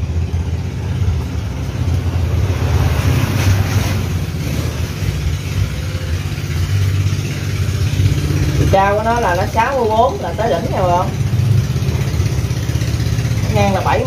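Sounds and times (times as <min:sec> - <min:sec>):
engine running: 0:00.0 - 0:14.0.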